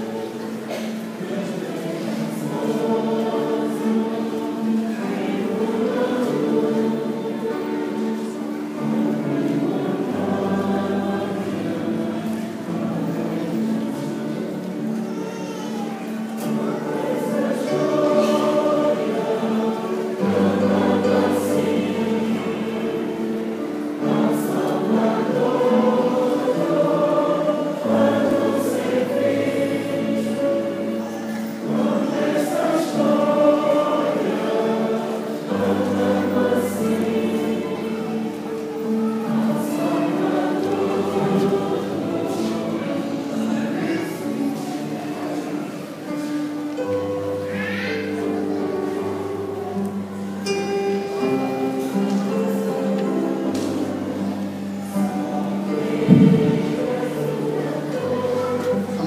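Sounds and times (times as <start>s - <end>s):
church choir singing: 0.0s - 59.0s.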